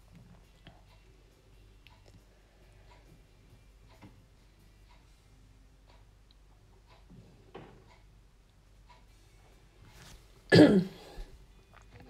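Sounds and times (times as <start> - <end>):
woman clearing her throat: 10.5 - 11.1.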